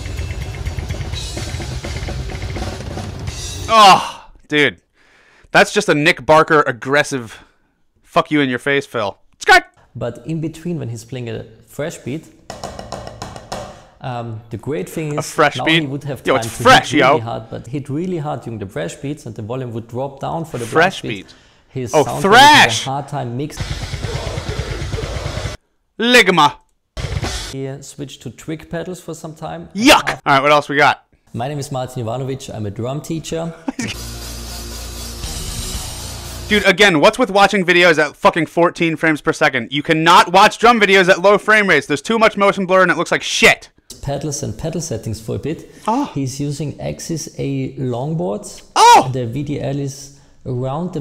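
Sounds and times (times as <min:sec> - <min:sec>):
metal blast beat drumming: 0:00.0 - 0:03.7, 0:23.6 - 0:25.6, 0:27.0 - 0:27.5.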